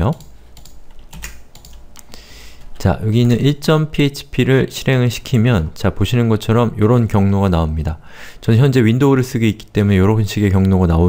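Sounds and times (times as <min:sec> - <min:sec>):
computer keyboard clicks: 0:00.1 - 0:02.1.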